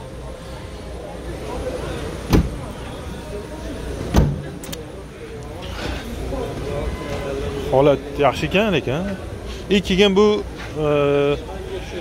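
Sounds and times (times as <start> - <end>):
car trunk lid slamming: 2.2 - 2.7, 4.0 - 4.6.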